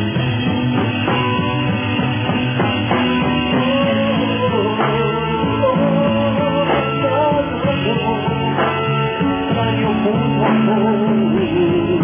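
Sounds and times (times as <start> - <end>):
pop band playing instrumental: 0.0 - 12.0.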